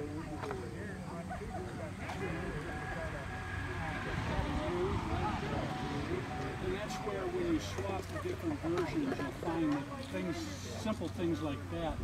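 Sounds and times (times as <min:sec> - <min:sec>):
distant indistinct chatter: 0:00.0 - 0:12.0
low outdoor rumble: 0:00.0 - 0:12.0.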